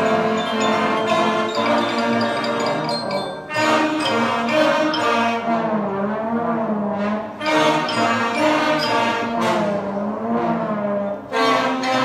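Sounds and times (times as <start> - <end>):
school concert band playing: 0.0 - 12.0
trombones: 0.0 - 12.0.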